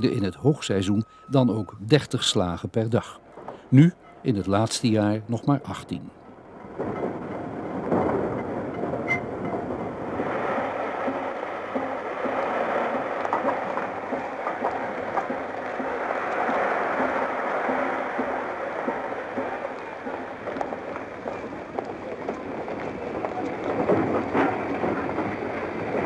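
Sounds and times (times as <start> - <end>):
tram rolling on track: 0.0 - 26.0.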